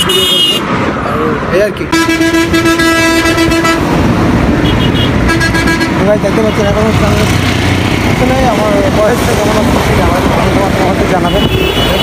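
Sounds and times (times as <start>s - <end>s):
road traffic rumble: 0.0s - 12.0s
vehicle horn blast: 1.9s - 3.8s.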